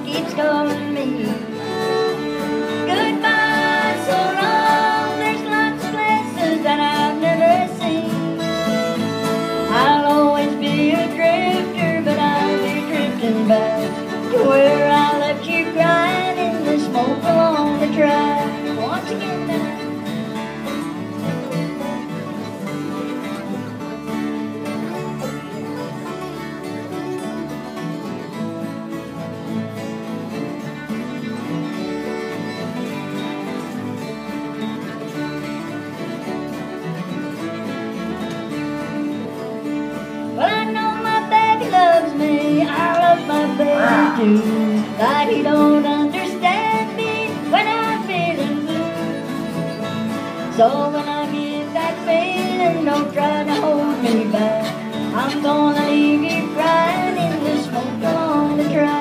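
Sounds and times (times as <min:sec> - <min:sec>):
acoustic guitars strumming: 0:00.0 - 0:59.0
lead guitar melody: 0:00.0 - 0:59.0.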